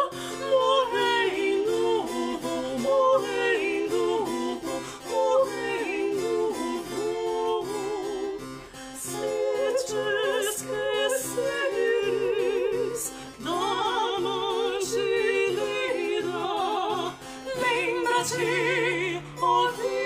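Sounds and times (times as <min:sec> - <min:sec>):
classical guitar: 0:00.0 - 0:20.0
two women singing a duet: 0:00.0 - 0:20.0.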